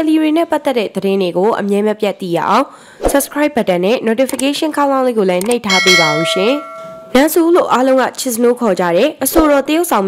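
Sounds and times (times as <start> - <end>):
bell chime: 5.7 - 7.3.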